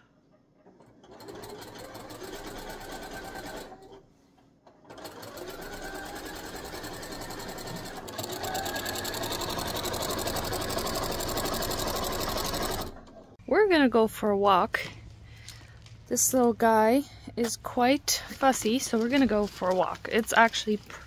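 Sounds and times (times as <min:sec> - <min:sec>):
sewing machine stitching: 0:00.7 - 0:04.1, 0:04.7 - 0:13.4.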